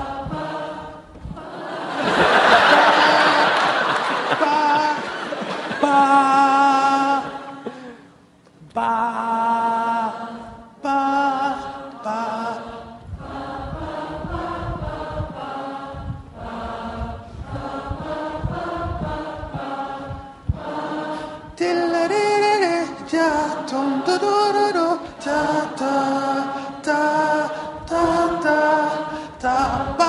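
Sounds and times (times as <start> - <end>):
audience singing held notes: 0.0 - 5.9, 10.0 - 30.0.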